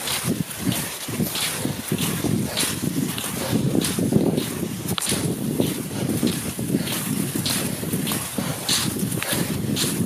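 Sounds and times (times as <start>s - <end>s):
skis swishing over snow: 0.0s - 10.0s
wind rumbling on microphone: 0.0s - 10.0s.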